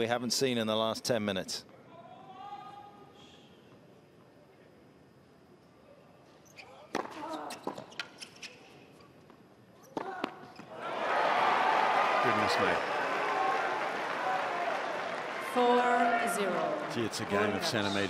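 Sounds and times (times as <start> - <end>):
tennis ball bouncing on hard court: 6.9 - 8.2
crowd clapping: 11.1 - 18.0.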